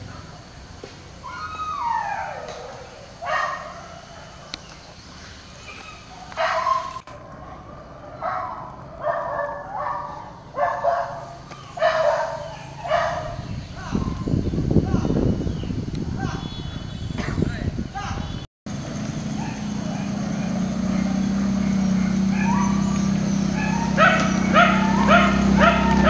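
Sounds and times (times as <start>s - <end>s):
dog howling cry: 1.2s - 3.8s, 22.0s - 26.0s
dogs barking and yipping: 1.2s - 4.8s, 5.6s - 14.3s, 19.3s - 26.0s.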